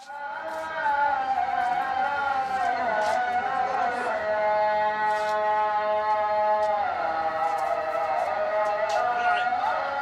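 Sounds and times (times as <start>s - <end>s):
man chanting call to prayer: 0.0s - 10.0s.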